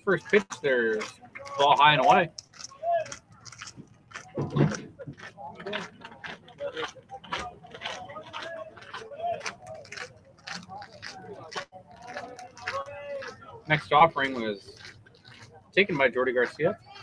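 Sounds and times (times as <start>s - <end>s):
indistinct voices talking: 0.0s - 3.5s, 4.2s - 17.0s.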